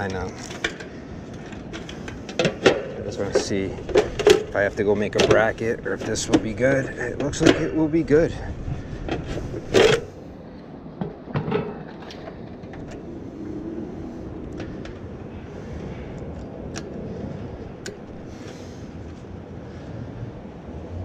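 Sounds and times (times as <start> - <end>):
light clicks of handling metal: 0.0 - 7.8
steady low rumble: 0.0 - 21.0.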